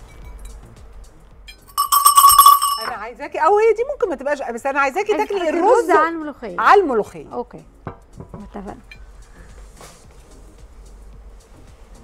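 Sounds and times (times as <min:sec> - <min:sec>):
fast rattle of strikes: 0:01.7 - 0:02.9
metallic bell ringing: 0:01.7 - 0:03.0.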